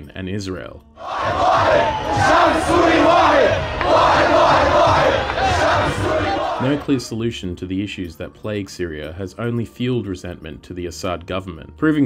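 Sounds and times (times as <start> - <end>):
crowd shouting and cheering: 1.0 - 7.1.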